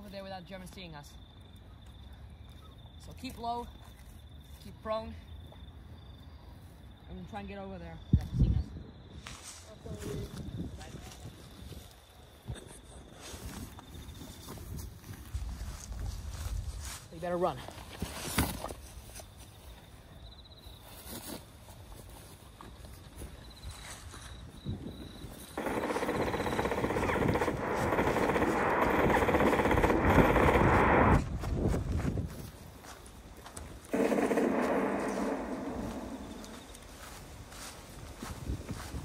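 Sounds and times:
machine-gun fire bursts: 0:25.6 - 0:31.2, 0:33.9 - 0:36.6.

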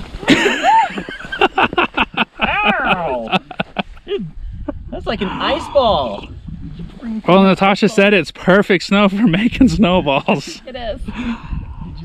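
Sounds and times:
people talking and laughing: 0:00.2 - 0:12.0.

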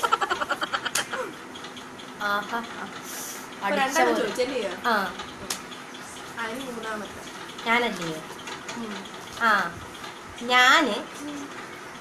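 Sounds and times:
woman laughing: 0:00.0 - 0:01.4.

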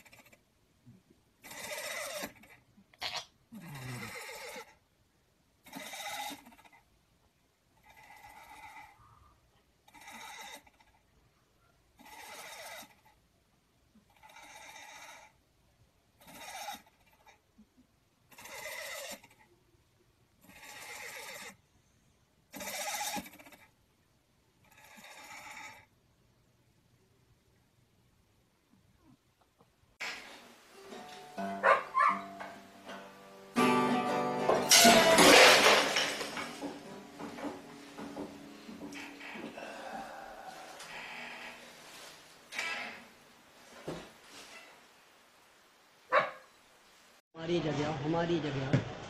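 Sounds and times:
cat snoring: 0:03.5 - 0:04.7, 0:07.8 - 0:09.3, 0:09.9 - 0:10.9, 0:12.0 - 0:13.0, 0:14.1 - 0:15.4, 0:24.6 - 0:25.9, 0:39.0 - 0:41.7.

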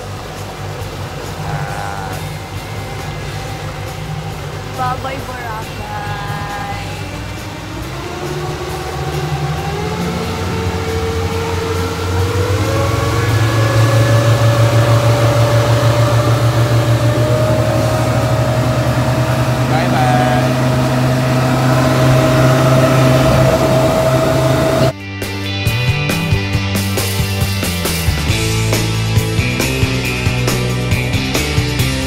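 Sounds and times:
outboard motors driving speedboat: 0:00.0 - 0:25.0, 0:26.8 - 0:32.0.

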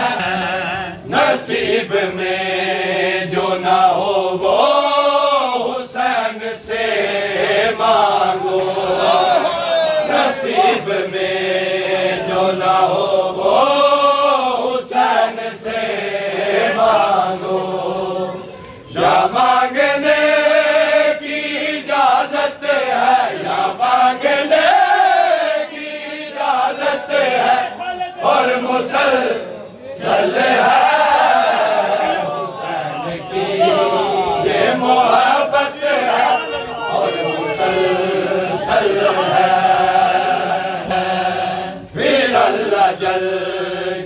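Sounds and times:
men chanting a lament: 0:00.0 - 0:44.0.

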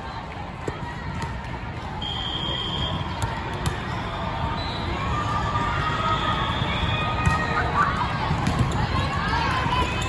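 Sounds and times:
crowd din in sports hall: 0:00.0 - 0:10.0
referee's whistle: 0:02.0 - 0:03.1.

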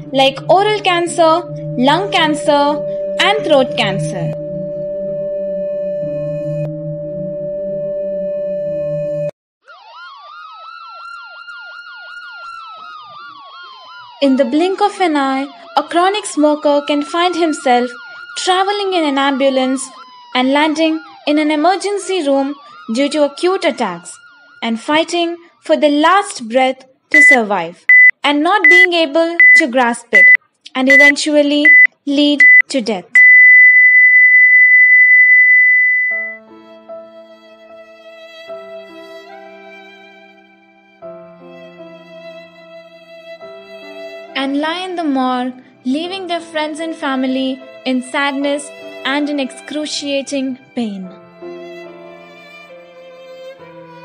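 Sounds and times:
steady siren tone: 0:00.0 - 0:25.5, 0:33.2 - 0:36.4
siren yelping: 0:00.0 - 0:25.7, 0:33.2 - 0:36.4
heart monitor flatline tone: 0:00.7 - 0:09.3, 0:27.2 - 0:29.6, 0:30.2 - 0:36.4.

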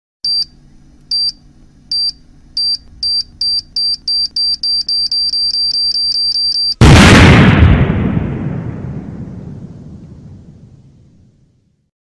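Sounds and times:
high-pitched countdown beeps: 0:01.1 - 0:06.8.

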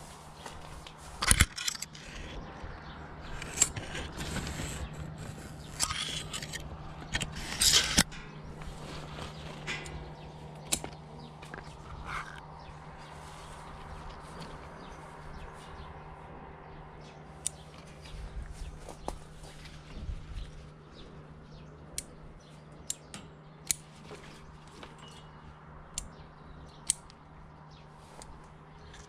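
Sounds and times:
leaves rustling: 0:00.0 - 0:02.5, 0:03.2 - 0:16.1
steady low hum: 0:00.0 - 0:29.0
shoots snapping and clicking: 0:01.2 - 0:02.4.

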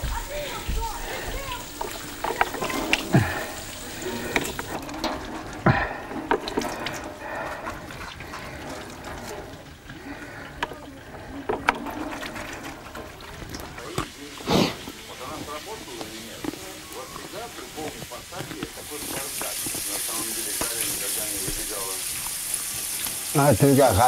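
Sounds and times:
television news voices: 0:00.0 - 0:07.5, 0:11.8 - 0:22.2, 0:23.3 - 0:24.0
clicks and knocks of objects: 0:01.8 - 0:14.2.

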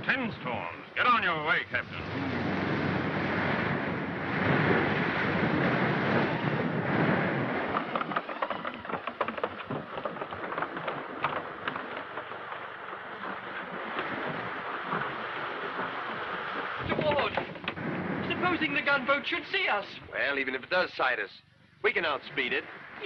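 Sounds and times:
rain: 0:00.0 - 0:20.2, 0:21.9 - 0:23.0
stormy wind: 0:00.0 - 0:20.2, 0:21.8 - 0:23.0
knocks and clatter: 0:04.6 - 0:18.8.

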